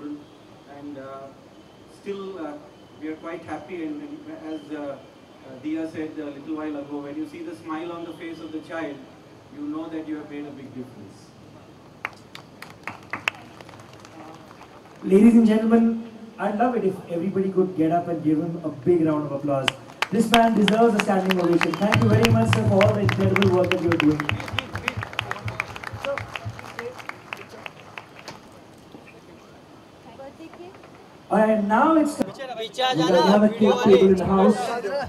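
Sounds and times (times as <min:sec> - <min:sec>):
audience applauding: 0:12.0 - 0:15.3, 0:19.7 - 0:28.6.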